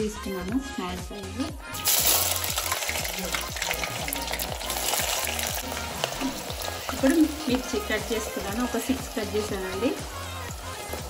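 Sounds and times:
onions sizzling in hot oil: 1.8 - 11.0.

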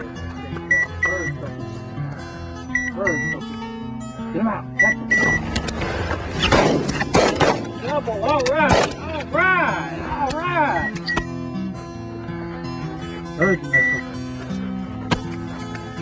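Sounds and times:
guitar music: 0.0 - 16.0
shotgun shots: 5.8 - 7.8, 8.6 - 9.0.

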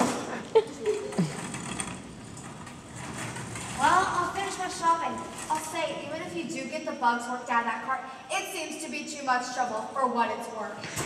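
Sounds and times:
shopping cart rattling: 0.8 - 6.2.

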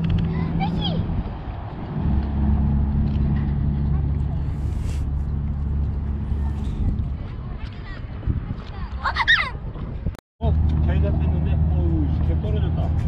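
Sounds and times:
low engine hum: 0.0 - 9.0, 9.8 - 13.0.

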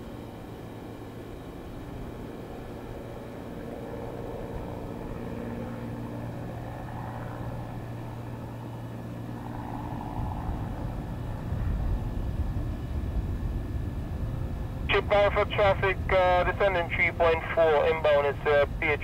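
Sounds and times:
propeller engines droning: 0.0 - 19.0.

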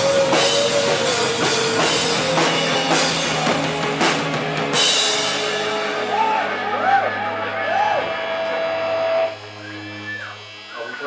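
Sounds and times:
band with guitars playing: 0.0 - 11.0.

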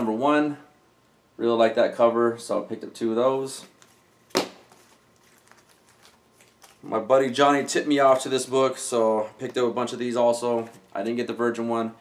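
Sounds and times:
faint handling noise: 3.5 - 8.4, 9.4 - 11.2
comic books slapping down: 4.3 - 4.8.

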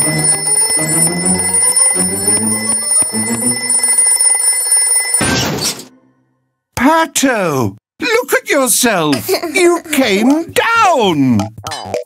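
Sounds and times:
cartoon alarm clock ringing: 0.0 - 5.4.

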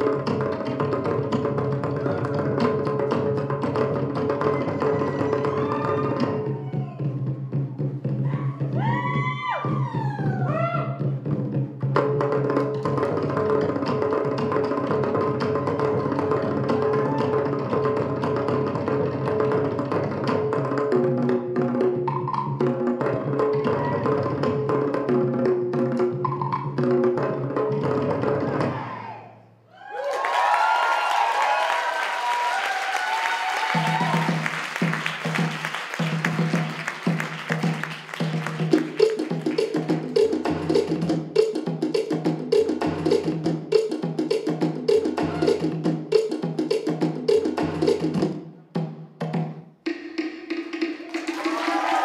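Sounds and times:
wooden slit-drum rhythm: 0.0 - 28.6, 33.6 - 52.0
audience cheering and clapping: 4.2 - 10.9, 15.6 - 17.7, 28.6 - 40.5, 50.9 - 52.0.

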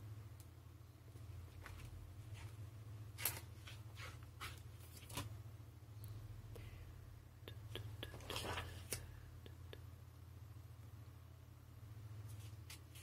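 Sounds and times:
paper crinkles and clicks: 8.1 - 9.0
sketchbook page turning: 8.1 - 9.0.

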